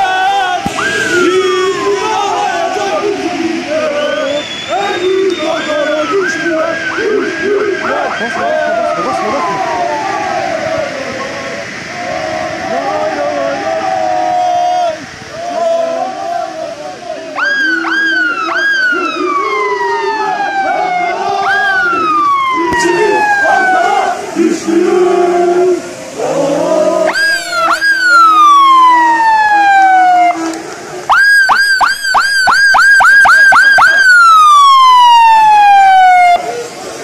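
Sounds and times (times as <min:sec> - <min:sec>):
police car siren wailing: 0:00.0 - 0:03.0, 0:04.7 - 0:14.2, 0:17.2 - 0:24.2, 0:26.3 - 0:36.7
siren fast yelp: 0:04.7 - 0:10.2, 0:17.4 - 0:24.1, 0:27.1 - 0:30.5, 0:31.1 - 0:36.5.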